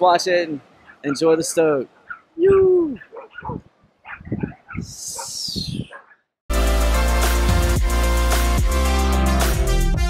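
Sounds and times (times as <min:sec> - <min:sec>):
loud music: 0:06.5 - 0:10.0.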